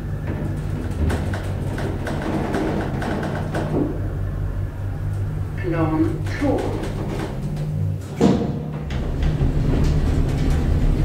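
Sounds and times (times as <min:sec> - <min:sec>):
elevator hum: 0:00.0 - 0:11.0.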